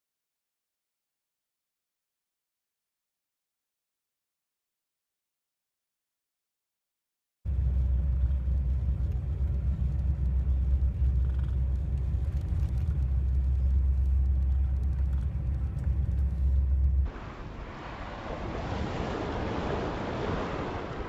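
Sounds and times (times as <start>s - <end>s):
steady low rumble: 7.5s - 21.0s
surf washing over pebbles: 7.7s - 21.0s.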